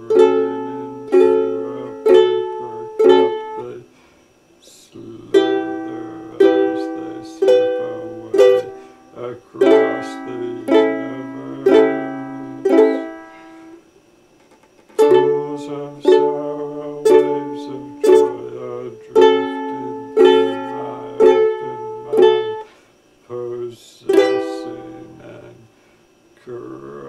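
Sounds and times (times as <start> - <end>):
ukulele chords strummed: 0.0 - 3.7, 5.3 - 13.6, 15.0 - 22.7, 24.1 - 25.5.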